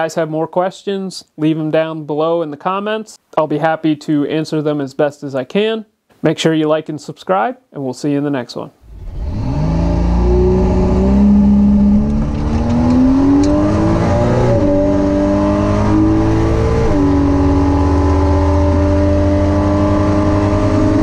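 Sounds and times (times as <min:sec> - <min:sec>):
car engine at full throttle: 0:08.9 - 0:21.0.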